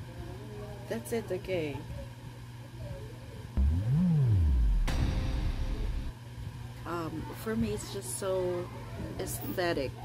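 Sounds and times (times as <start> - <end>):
electronic synth swoop: 3.6 - 6.1.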